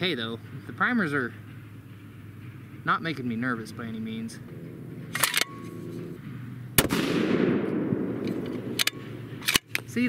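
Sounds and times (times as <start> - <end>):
rifle bolt clicks: 5.1 - 5.7, 8.2 - 9.9
rifle shot with echo: 6.8 - 9.6.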